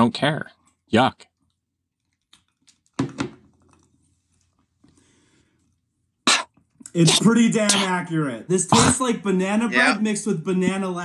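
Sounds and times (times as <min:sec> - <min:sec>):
faint breath: 0:04.9 - 0:05.8.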